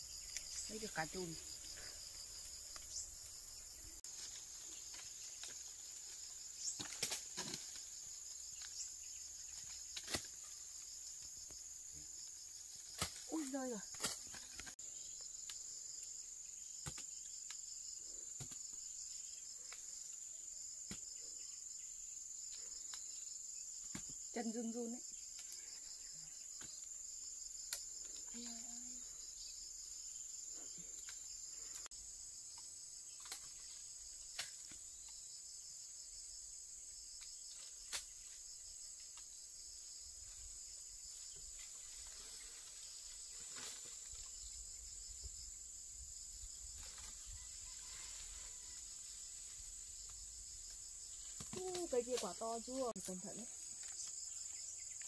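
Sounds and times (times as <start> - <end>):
insects chirring: 0.0 - 55.0.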